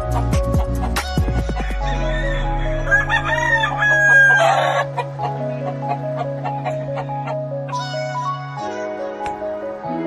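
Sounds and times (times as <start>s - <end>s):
background music: 0.0s - 10.0s
rooster crowing: 1.5s - 5.0s.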